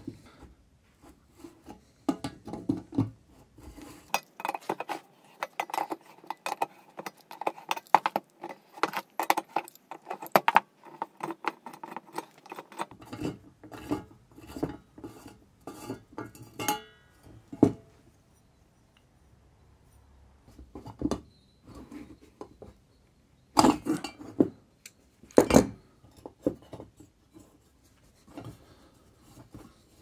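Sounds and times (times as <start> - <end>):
metallic clicks and scraping: 1.4 - 16.8.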